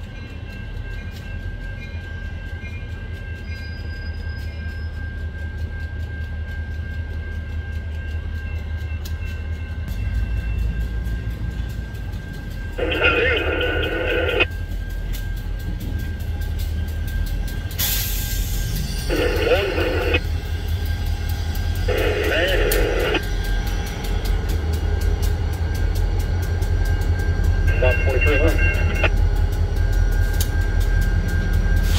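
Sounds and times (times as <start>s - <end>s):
diesel locomotives rumbling past: 0.0s - 31.9s.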